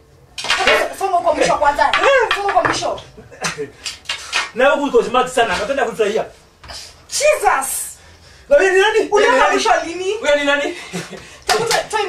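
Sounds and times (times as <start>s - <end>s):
small object clattering: 1.7s - 3.0s
person speaking loudly: 7.1s - 10.8s, 11.5s - 12.0s.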